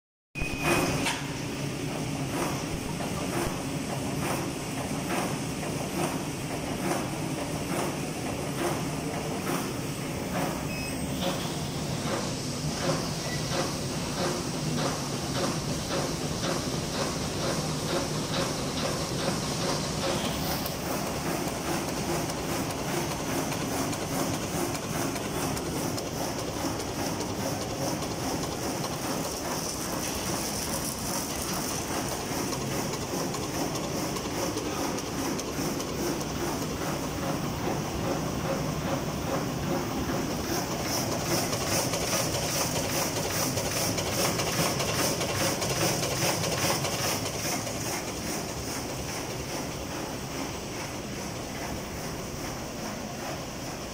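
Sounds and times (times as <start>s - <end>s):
rollers and drive running: 2.0s - 53.9s.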